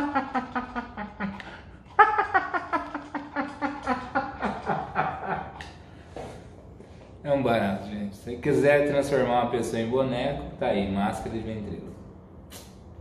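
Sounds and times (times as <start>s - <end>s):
man laughing: 0.0s - 5.6s.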